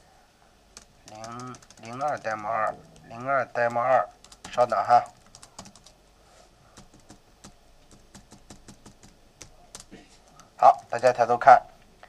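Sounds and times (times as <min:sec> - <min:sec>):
faint computer keyboard typing: 0:00.7 - 0:06.0, 0:06.7 - 0:11.2.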